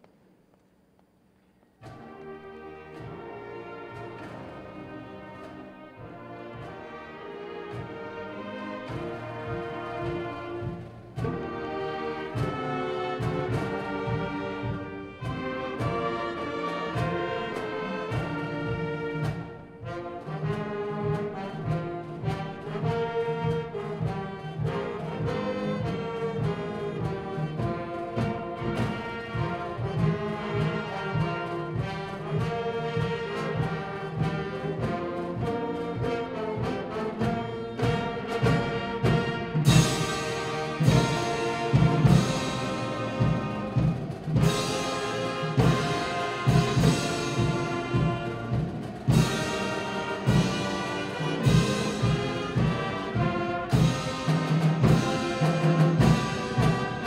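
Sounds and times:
brass band with drums playing: 1.8 - 57.0.

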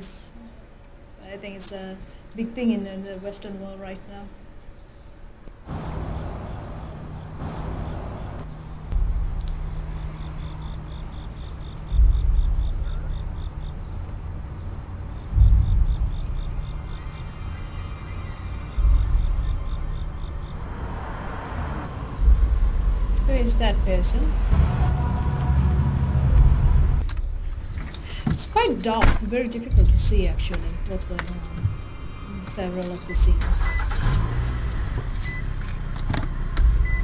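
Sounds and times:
suspense score drone: 0.0 - 37.0
crickets chirping: 4.8 - 37.0
deep booming hits: 5.7 - 27.8, 28.9 - 32.0.

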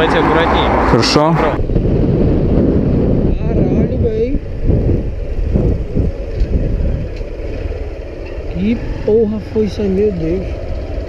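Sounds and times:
wind buffeting microphone: 0.0 - 11.0
motorcycle engine running: 1.6 - 11.0.

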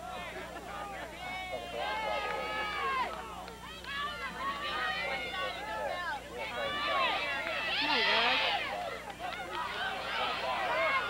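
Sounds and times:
crowd yelling and cheering: 0.0 - 11.0.

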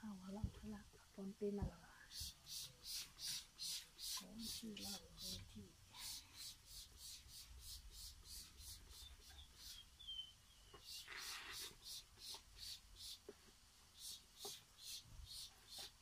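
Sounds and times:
spray bottle hissing mist: 2.1 - 10.0, 10.7 - 16.0.

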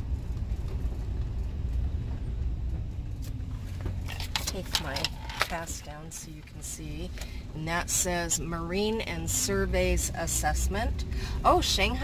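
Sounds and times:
engine rumble: 0.0 - 12.0
road noise: 0.0 - 12.0.

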